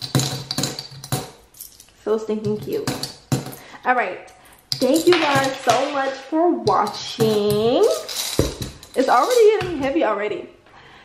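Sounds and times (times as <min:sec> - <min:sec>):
coins clinking into piggy bank: 0:00.0 - 0:03.7, 0:04.3 - 0:06.0, 0:06.6 - 0:09.9.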